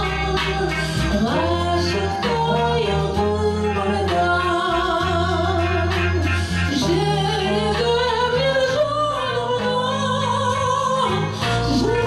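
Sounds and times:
instrumental accompaniment: 0.0 - 12.0
woman singing: 0.0 - 12.0.

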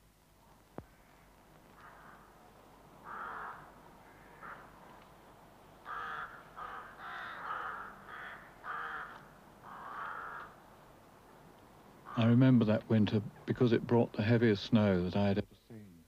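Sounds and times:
crows cawing: 0.8 - 5.2, 5.8 - 12.6.

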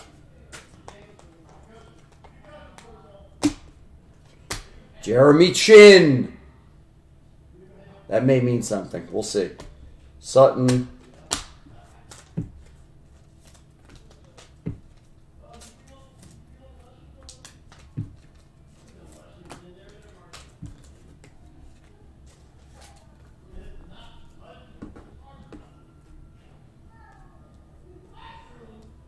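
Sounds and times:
cards flipped and tapped on table: 0.0 - 3.8, 10.6 - 12.8, 13.4 - 16.4, 17.2 - 22.9.

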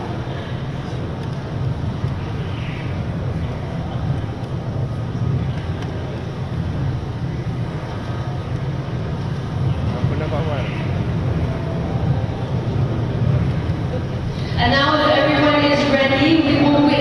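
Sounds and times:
faint voices: 0.0 - 17.0.

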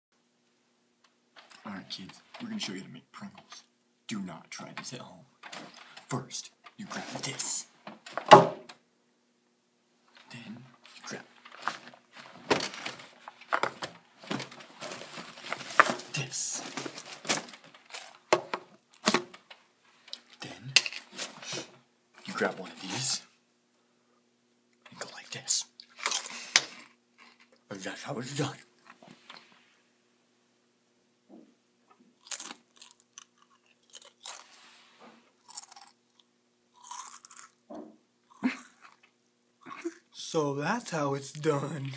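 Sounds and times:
fabric and bag rustling: 11.4 - 18.2
person chewing crisps: 25.8 - 27.6, 32.2 - 34.7, 35.4 - 37.6, 38.3 - 39.9.

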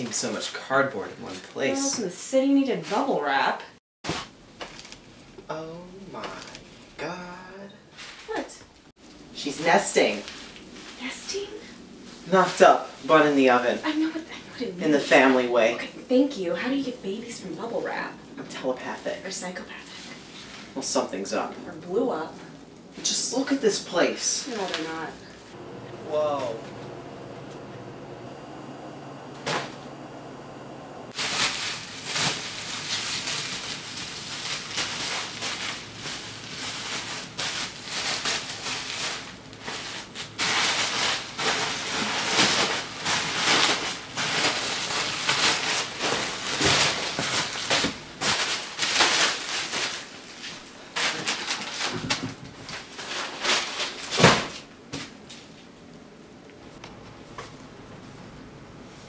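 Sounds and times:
bubble wrap crinkling: 4.1 - 5.5, 31.1 - 54.3.

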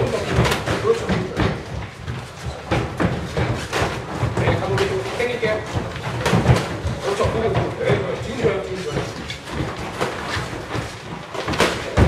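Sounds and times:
boxing gloves thudding: 0.0 - 8.5, 9.5 - 12.0
feet moving on canvas: 0.0 - 12.0.

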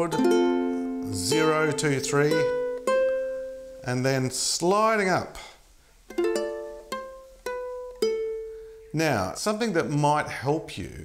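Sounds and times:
ukulele notes plucked: 0.0 - 3.9, 6.1 - 8.6.

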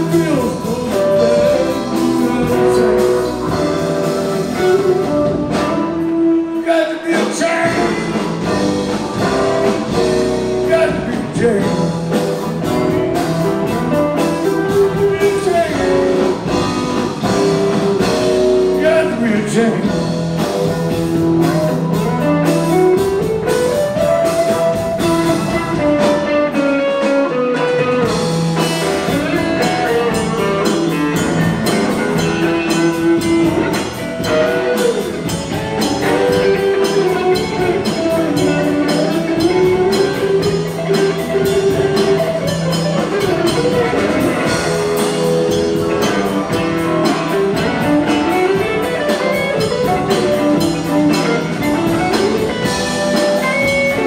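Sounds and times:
electric bass: 0.0 - 6.7, 7.3 - 54.0
drums: 0.0 - 54.0
electric guitar solo: 20.6 - 54.0.

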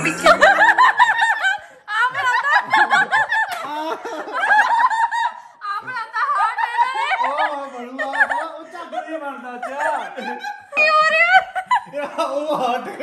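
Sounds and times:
people giggling: 0.0 - 13.0.

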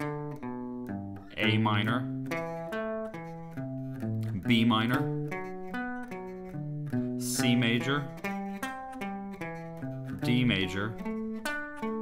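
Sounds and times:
clean electric guitar arpeggio: 0.0 - 12.0.

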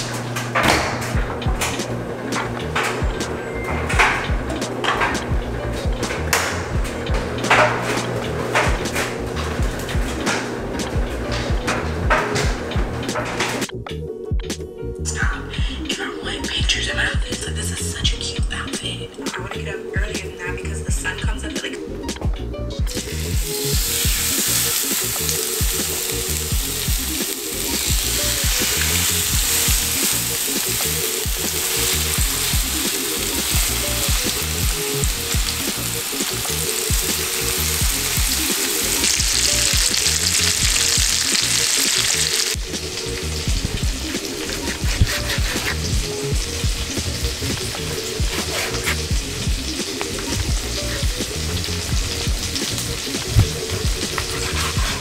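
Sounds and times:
background music: 0.0 - 55.0
steak sizzling in a frying pan: 23.0 - 55.0.

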